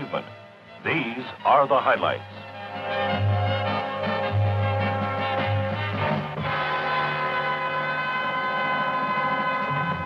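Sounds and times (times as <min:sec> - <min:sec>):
orchestral brass chord: 0:03.2 - 0:10.0.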